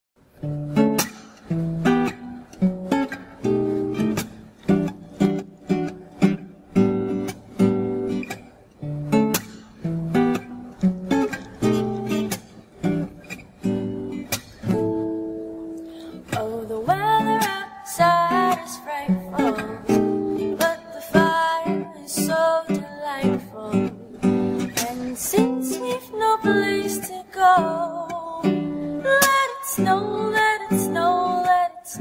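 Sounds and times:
acoustic guitar strumming chords: 0.3 - 32.0.

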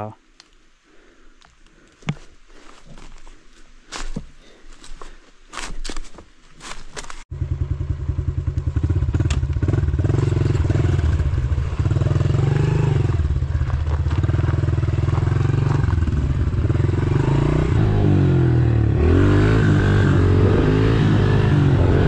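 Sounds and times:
small motorbike engine revving: 7.4 - 13.5.

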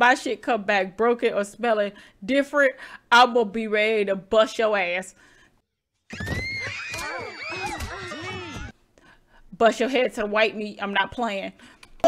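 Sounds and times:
cartoon girls screaming: 6.1 - 8.7.

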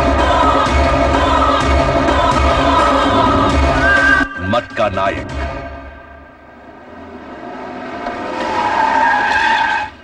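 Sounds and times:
vehicle tyre squeal: 3.8 - 4.5, 8.1 - 10.0.

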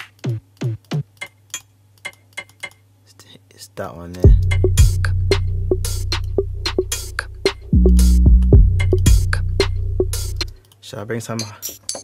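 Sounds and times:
drum machine percussion ticks: 0.0 - 2.9, 4.2 - 10.6, 11.3 - 12.0.

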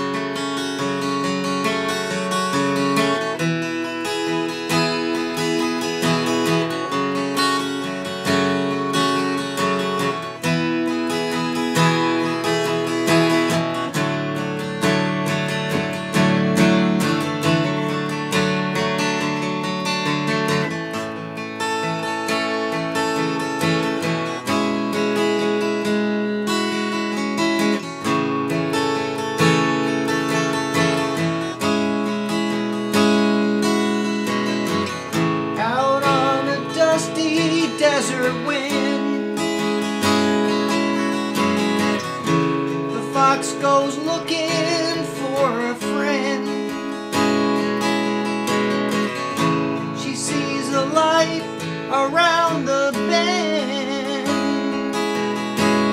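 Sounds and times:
acoustic guitar chords: 0.0 - 55.9.

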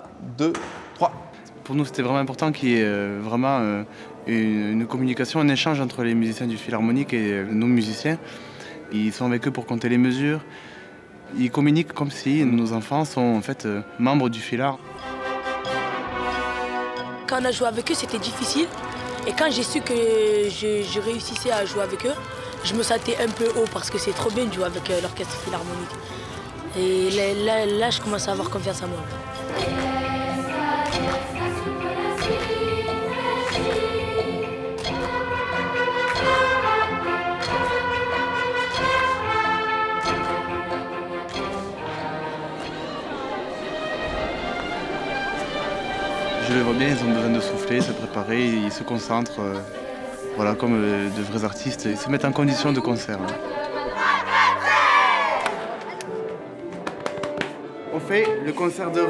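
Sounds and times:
orchestral music: 1.6 - 59.0
orchestra brass chord: 14.8 - 17.3, 28.7 - 51.3.

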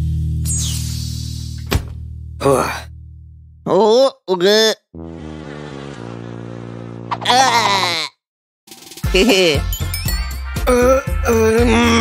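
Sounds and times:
cartoon flies buzzing: 4.9 - 8.0.

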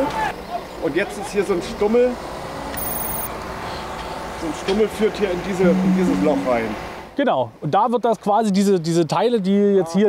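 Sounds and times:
outdoor background hum and hiss: 0.0 - 10.0
high-pitched electronic beep: 2.8 - 3.3, 5.6 - 6.8.

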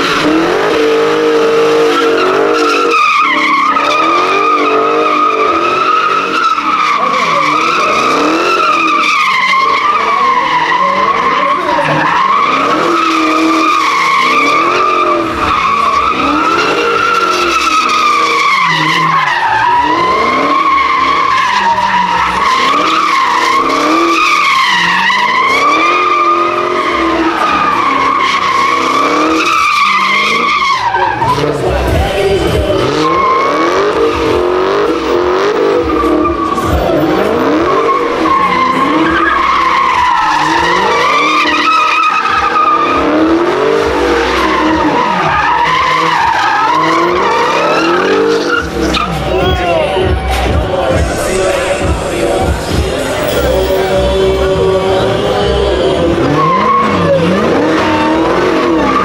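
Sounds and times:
car engine revving: 0.0 - 59.0
tyres squealing: 0.0 - 59.0.

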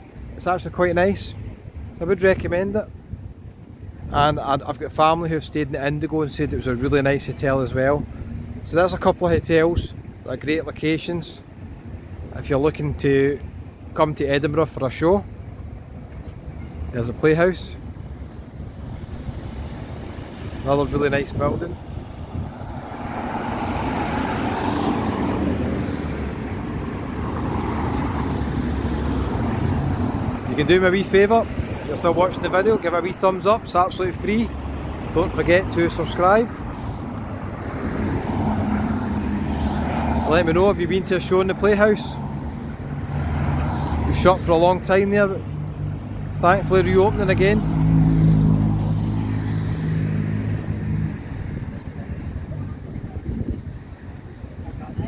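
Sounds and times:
low traffic rumble: 0.0 - 55.0
cars and van driving past: 15.3 - 55.0
vehicle engine humming: 15.3 - 55.0.

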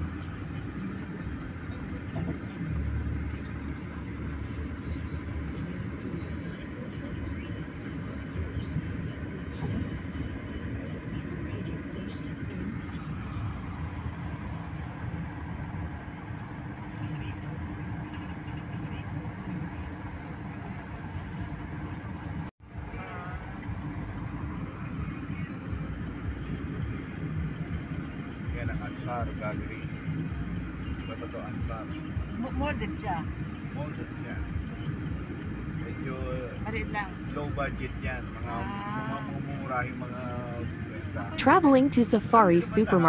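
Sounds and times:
car road and engine noise: 0.0 - 43.0.

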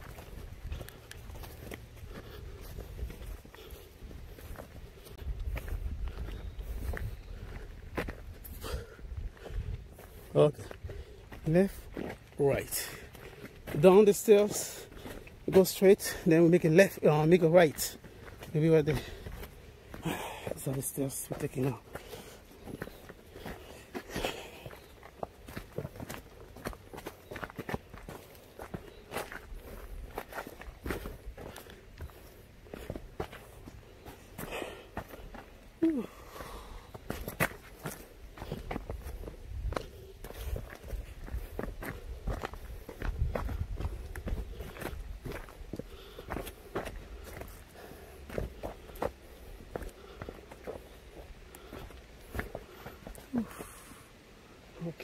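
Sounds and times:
footsteps on dirt and wooden steps: 0.0 - 55.0.

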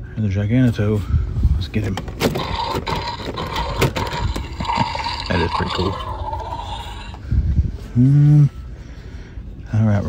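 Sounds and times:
man humming: 7.9 - 8.7.

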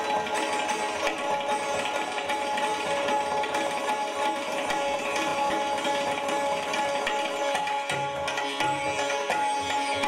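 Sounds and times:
tabla playing: 0.0 - 10.0.

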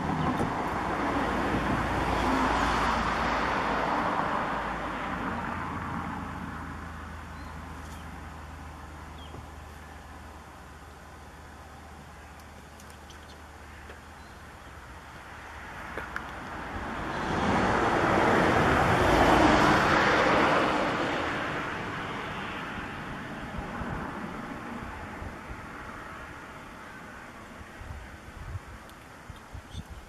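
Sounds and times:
motor vehicle passing: 0.0 - 27.4.

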